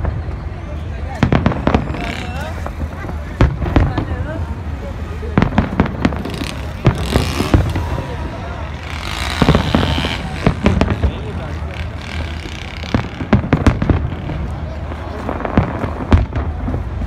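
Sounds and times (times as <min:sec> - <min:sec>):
crowd voices: 0:00.0 - 0:17.0
fireworks bangs and crackles: 0:00.0 - 0:17.0.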